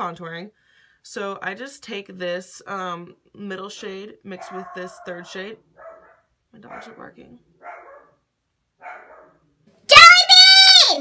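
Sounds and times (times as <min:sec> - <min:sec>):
dog barking faintly: 0:04.4 - 0:08.2, 0:08.8 - 0:09.4
woman shouting loudly: 0:09.9 - 0:11.0.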